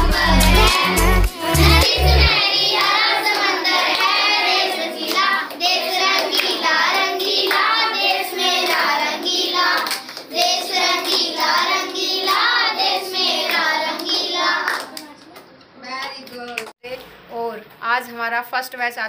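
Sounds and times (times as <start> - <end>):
children singing: 0.0 - 14.9
hand claps: 9.7 - 11.6, 13.4 - 16.8.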